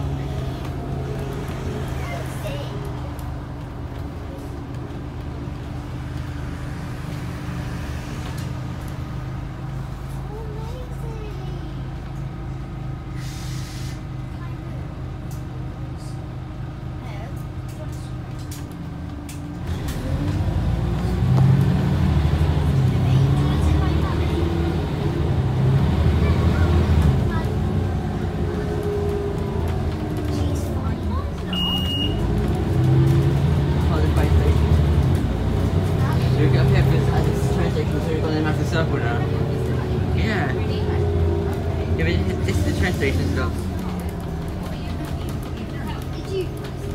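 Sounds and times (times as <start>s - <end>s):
bus diesel engine accelerating: 0.0s - 46.9s
short high beep: 31.5s - 32.2s.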